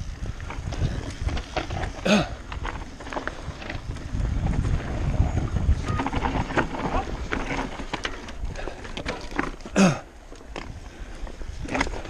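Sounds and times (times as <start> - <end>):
wind rumbling on microphone: 0.0 - 9.4, 10.4 - 12.0
bike rattling and knocking: 0.0 - 12.0
bike tyre noise: 0.0 - 12.0.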